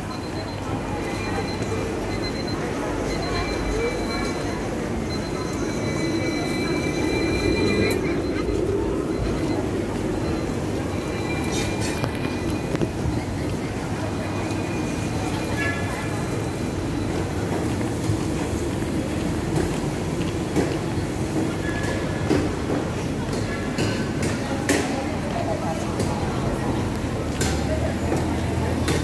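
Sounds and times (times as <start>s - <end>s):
crowd chatter: 0.0s - 29.0s
tram running on street tracks: 0.0s - 29.0s.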